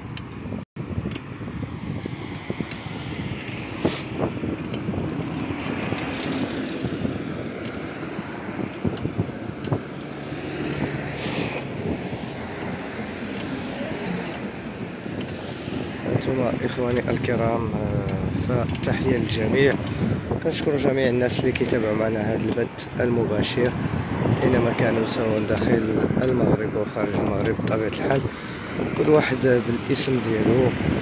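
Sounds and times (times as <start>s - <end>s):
car road and engine noise: 0.0s - 31.0s
wind on microphone: 0.0s - 31.0s.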